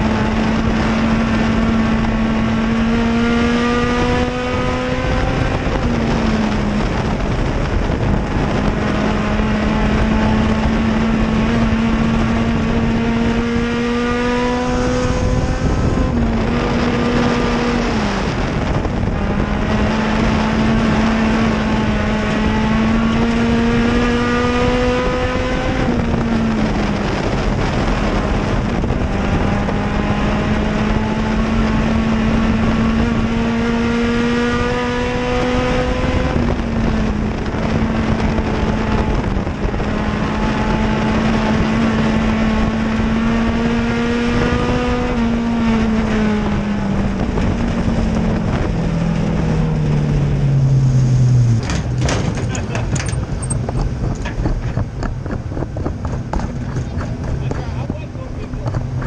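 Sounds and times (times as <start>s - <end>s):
race car engine revving: 0.0s - 59.0s
wind and road noise: 0.0s - 59.0s.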